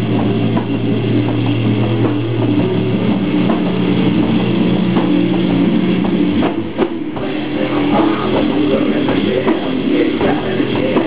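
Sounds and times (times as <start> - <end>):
distorted bass and guitar: 0.0 - 11.0
drums and cymbals: 0.0 - 11.0.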